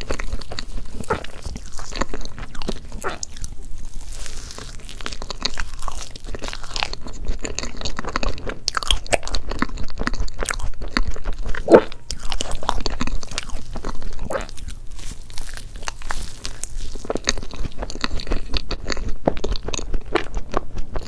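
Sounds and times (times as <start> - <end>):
close chewing: 0.0 - 21.0.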